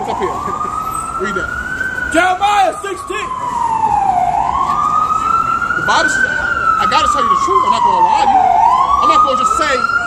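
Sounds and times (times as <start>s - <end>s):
emergency siren wailing: 0.0s - 10.0s.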